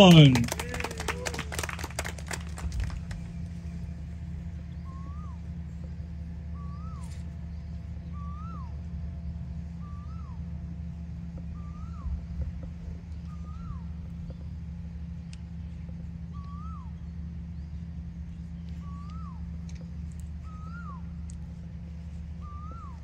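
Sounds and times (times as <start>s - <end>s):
applause: 0.0s - 3.4s
steady low rumble: 0.0s - 23.0s
bird whistled call: 4.7s - 5.6s, 6.5s - 7.4s, 8.0s - 8.9s, 9.7s - 10.5s, 11.4s - 12.4s, 13.2s - 14.1s, 16.3s - 17.2s, 18.7s - 19.5s, 20.4s - 21.2s, 22.3s - 23.0s.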